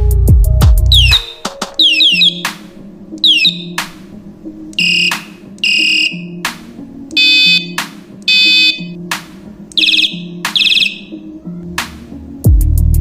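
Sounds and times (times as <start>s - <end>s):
electronic bicycle horn beeps: 1.0s - 2.5s, 3.2s - 3.8s, 4.8s - 6.4s, 7.1s - 9.0s, 9.8s - 11.2s.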